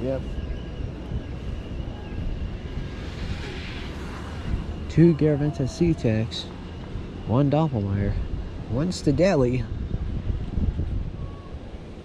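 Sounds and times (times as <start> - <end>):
faint high whine: 0.0 - 12.0
wind rumbling on microphone: 0.0 - 12.0
soft gust of hiss: 2.5 - 6.8.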